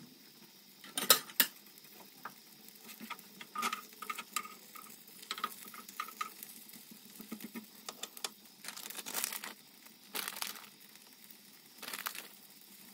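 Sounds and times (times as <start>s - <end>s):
tortilla wrap crackling on grill pan: 0.8s - 12.9s.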